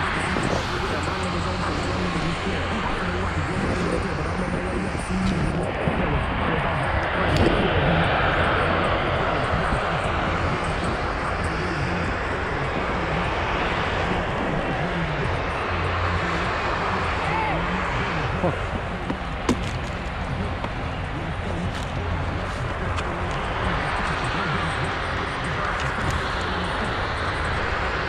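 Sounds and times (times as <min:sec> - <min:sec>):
wind rushing over microphone: 0:00.0 - 0:28.0.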